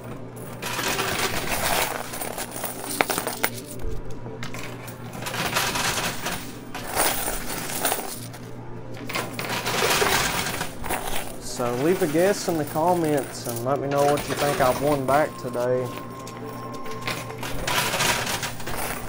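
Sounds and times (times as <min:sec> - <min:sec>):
coins clattering and clinking: 0:00.0 - 0:19.0.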